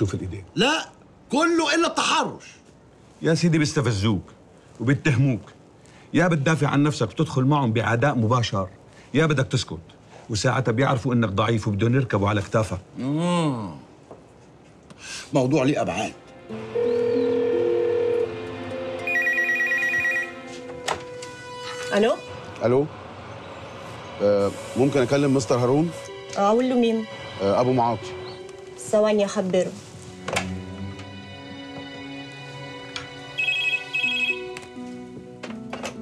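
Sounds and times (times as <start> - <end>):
background music: 15.3 - 36.0
telephone electronic trilling ring: 16.8 - 18.3, 19.1 - 20.4, 33.4 - 34.4.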